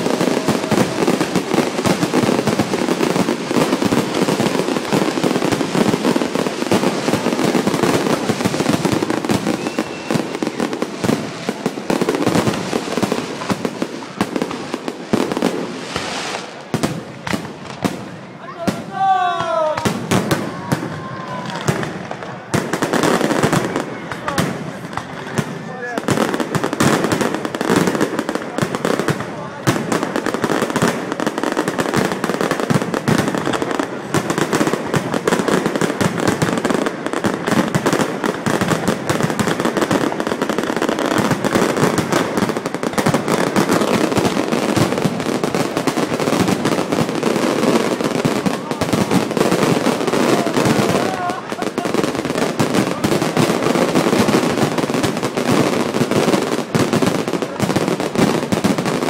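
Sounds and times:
fireworks bursting: 0:00.0 - 0:59.0.

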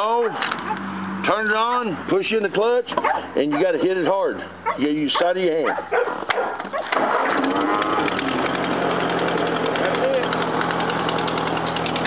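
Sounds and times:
tractor engine starting and idling: 0:06.8 - 0:12.0.

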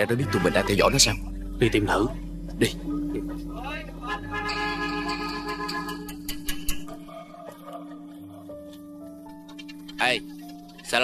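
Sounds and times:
low background music drone: 0:00.0 - 0:11.0.

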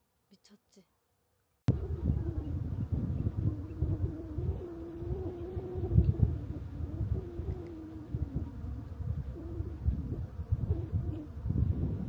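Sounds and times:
low wavering hum: 0:01.7 - 0:12.0
wind buffeting microphone: 0:01.7 - 0:12.0.

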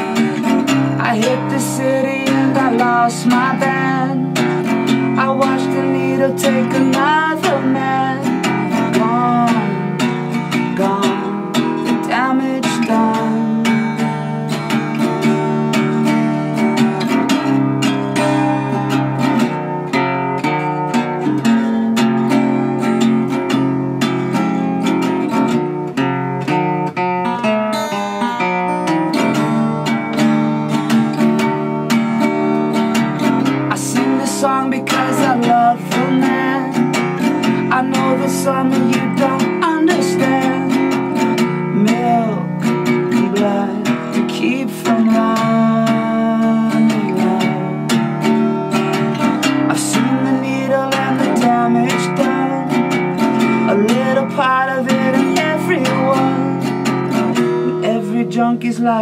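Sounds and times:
acoustic guitar chords: 0:00.0 - 0:59.0.

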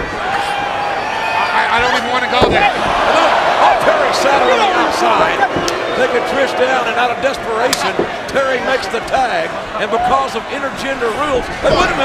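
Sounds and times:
arena crowd voices: 0:00.0 - 0:12.0
wrestlers thumping on ring canvas: 0:02.4 - 0:03.0.

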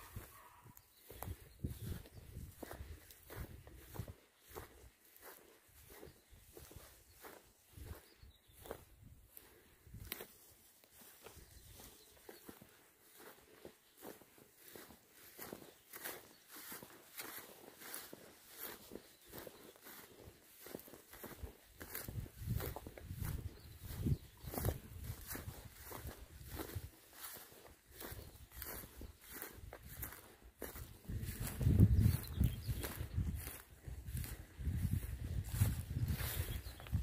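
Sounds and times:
footsteps through long grass: 0:00.0 - 0:37.0.

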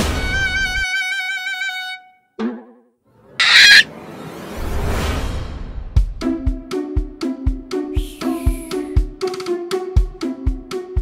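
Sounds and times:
high-pitched cartoon squawk: 0:03.4 - 0:03.9.

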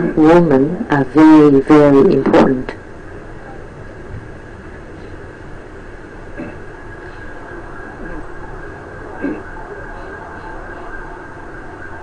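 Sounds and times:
room noise rumble and hiss: 0:00.0 - 0:12.0.

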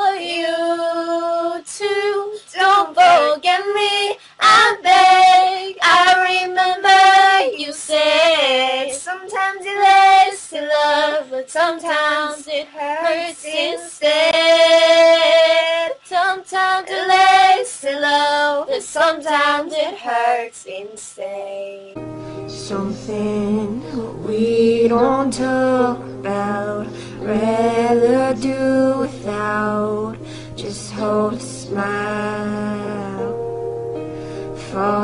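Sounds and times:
young woman singing: 0:00.0 - 0:33.4, 0:34.5 - 0:35.0.

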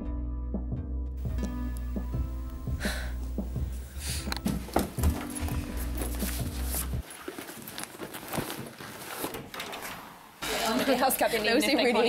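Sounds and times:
handbag and papers rustling: 0:04.4 - 0:09.9.

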